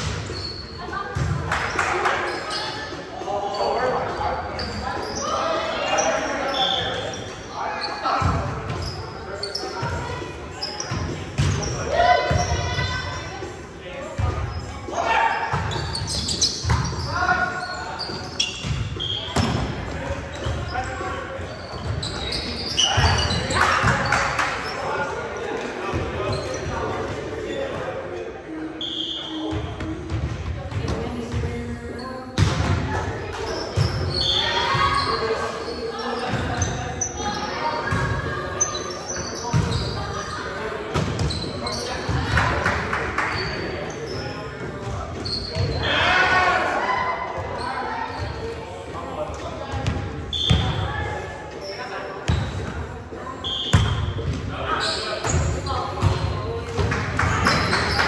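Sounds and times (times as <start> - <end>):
players calling and chatting: 0.0 - 58.0.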